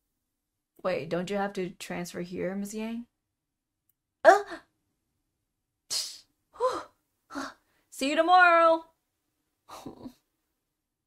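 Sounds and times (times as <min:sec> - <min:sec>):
woman gasping and panting: 0:06.6 - 0:07.7.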